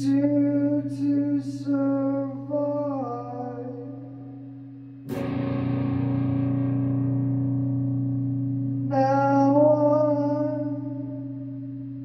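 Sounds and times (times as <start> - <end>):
distorted electric guitar chord: 0.0 - 12.0
low drone: 0.0 - 12.0.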